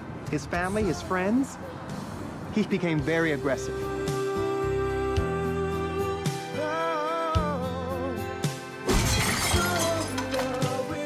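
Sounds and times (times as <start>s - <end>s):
background music: 0.0s - 11.0s
glass shattering: 8.8s - 10.9s.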